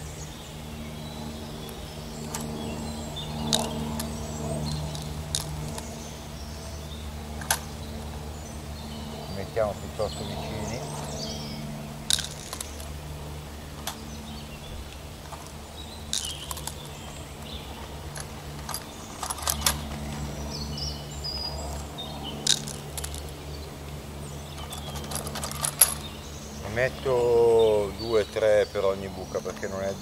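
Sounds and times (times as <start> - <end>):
birds chirping faintly: 0.0 - 30.0.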